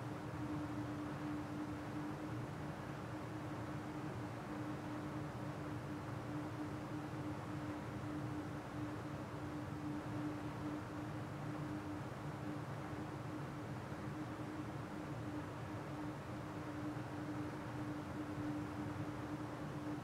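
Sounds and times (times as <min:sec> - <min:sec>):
faint steady tone: 0:00.0 - 0:20.0.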